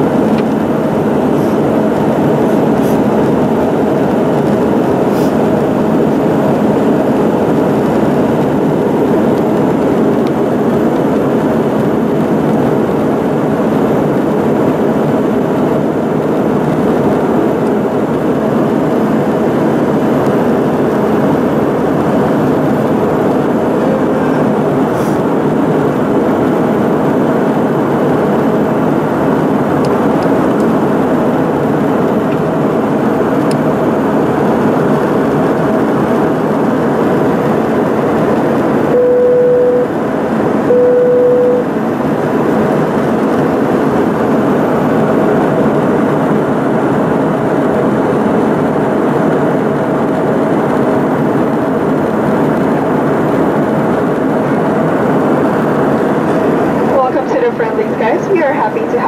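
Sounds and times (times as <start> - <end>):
jet engines rumbling in cabin: 0.0 - 59.0
short steady tones: 38.9 - 39.9, 40.7 - 41.7.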